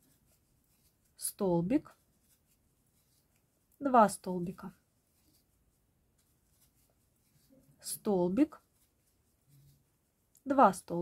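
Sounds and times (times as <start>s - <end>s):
crochet hook rustling yarn: 0.0s - 11.0s
person speaking: 1.1s - 2.0s, 3.7s - 4.8s, 7.7s - 8.7s, 10.4s - 11.0s.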